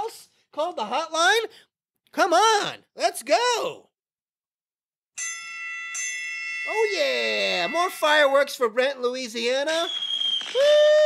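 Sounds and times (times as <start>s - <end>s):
bell-like chime: 5.2s - 8.9s.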